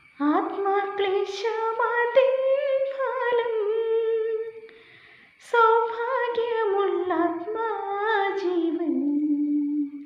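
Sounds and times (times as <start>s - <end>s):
woman singing unaccompanied: 0.2s - 4.7s, 5.4s - 10.0s.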